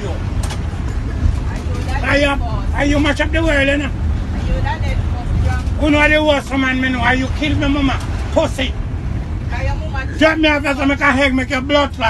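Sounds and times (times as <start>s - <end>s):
bus engine rumble: 0.0s - 12.0s.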